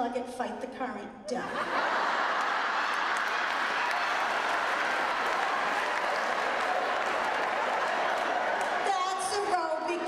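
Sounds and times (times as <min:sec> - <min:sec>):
audience applauding: 0:01.8 - 0:09.7.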